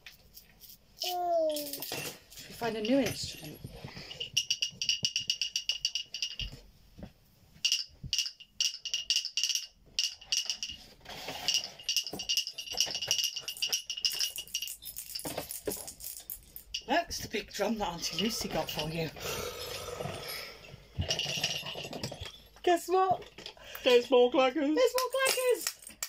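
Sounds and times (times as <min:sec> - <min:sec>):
jingle bell rattling in wooden clacker: 0:00.3 - 0:06.6, 0:07.6 - 0:19.2, 0:20.2 - 0:24.1, 0:24.8 - 0:26.0.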